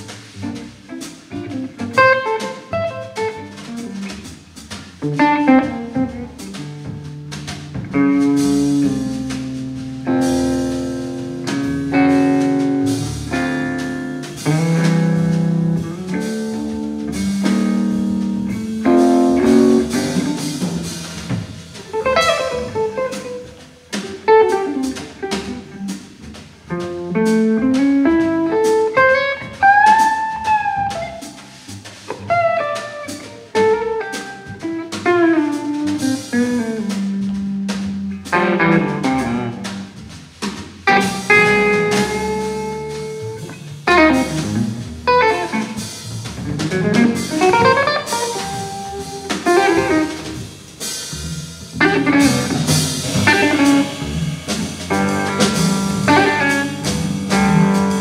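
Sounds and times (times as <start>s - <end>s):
plucked upright bass: 0.0s - 24.2s, 24.8s - 58.0s
drum kit with cymbals: 0.0s - 58.0s
electric guitar melody: 0.0s - 58.0s.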